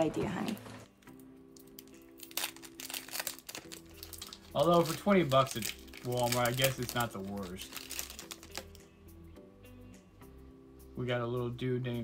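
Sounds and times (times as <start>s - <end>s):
soft background music: 0.0s - 12.0s
foil wrapper crinkling: 1.5s - 8.8s.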